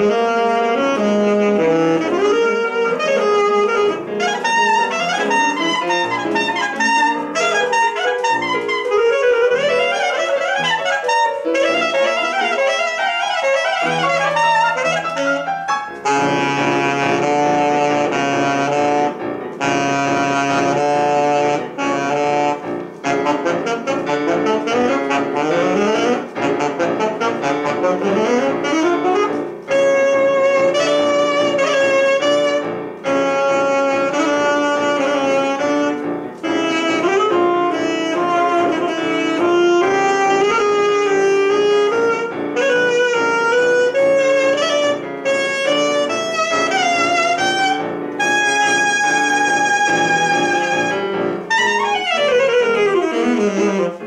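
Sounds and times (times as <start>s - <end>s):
piano: 0.0s - 54.0s
saxophone: 0.0s - 54.0s.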